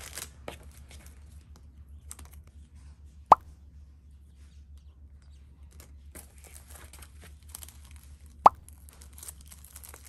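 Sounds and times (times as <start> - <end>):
plastic packs and paper rustling: 0.0 - 2.4, 5.7 - 10.0.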